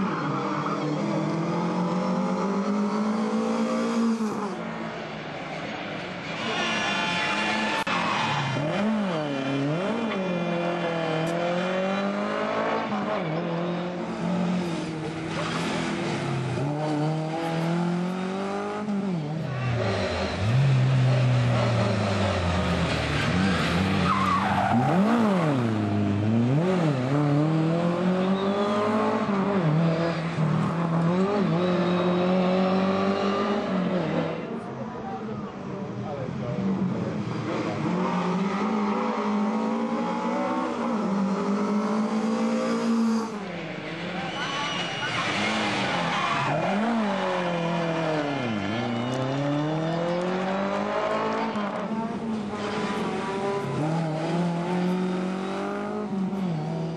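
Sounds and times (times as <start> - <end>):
tyre squeal: 21.6 - 26.0, 28.0 - 29.1, 43.8 - 50.1
rally car engine revving: 36.8 - 56.9.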